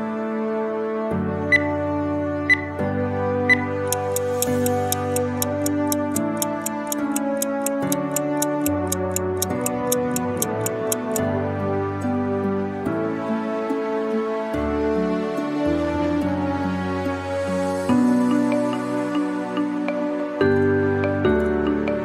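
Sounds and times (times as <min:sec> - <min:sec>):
soft background music: 0:00.0 - 0:22.0
stopwatch ticking: 0:03.5 - 0:11.2.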